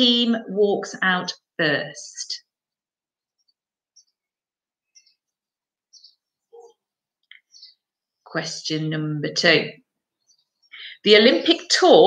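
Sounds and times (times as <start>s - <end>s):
faint bird chirps: 3.2s - 8.3s.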